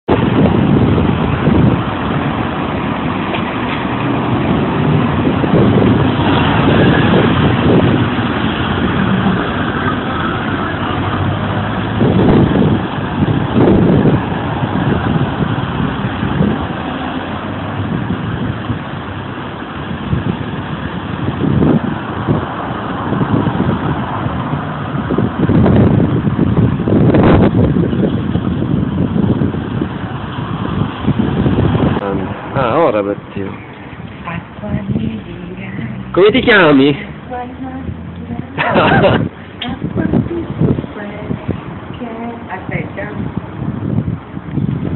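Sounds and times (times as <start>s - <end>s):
road traffic rumble: 0.0s - 44.9s.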